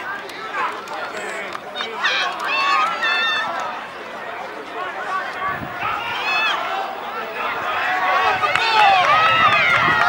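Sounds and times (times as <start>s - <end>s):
people shouting and calling out: 0.0s - 10.0s.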